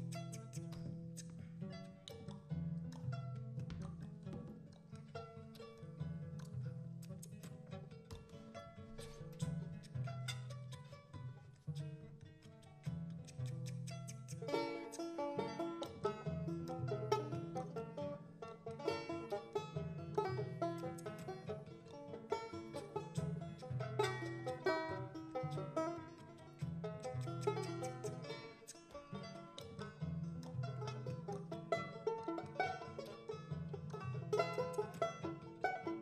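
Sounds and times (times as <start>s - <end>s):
plucked string notes: 0.0s - 36.0s.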